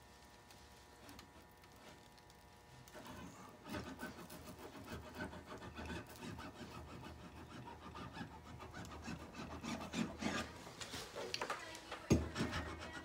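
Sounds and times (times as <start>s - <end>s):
metal tool rubbing on mesh: 12.3s - 13.0s.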